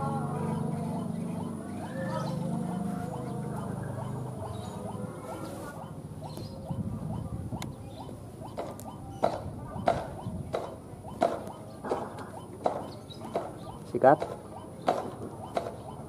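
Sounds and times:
short chirping animal calls: 0.1s - 16.0s
sharp clicks: 6.2s - 16.0s.

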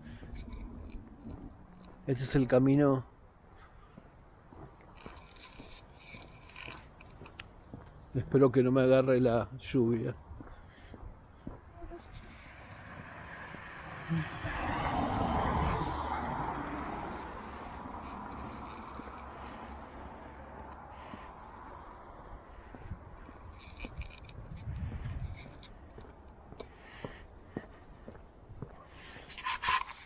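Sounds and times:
vehicle passing: 11.9s - 26.2s.

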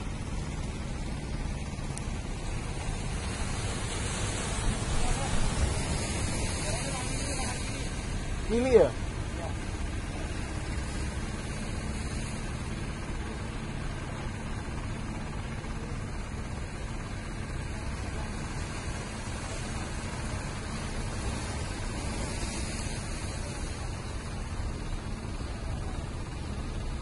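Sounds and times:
distant boat engine hum: 0.0s - 27.0s
sea rushing: 0.0s - 27.0s
wind: 0.0s - 27.0s.

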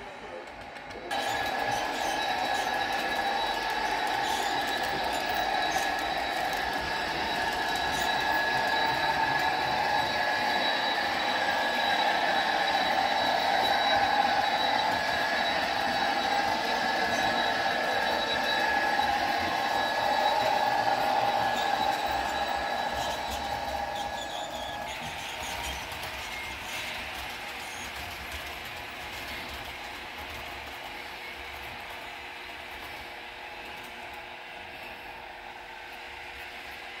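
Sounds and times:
train wheel noise: 0.0s - 37.0s
model train motor whine: 0.6s - 37.0s.

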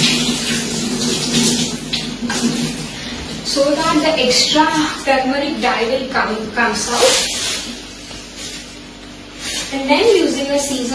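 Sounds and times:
tap water hissing into sink: 0.0s - 3.4s.

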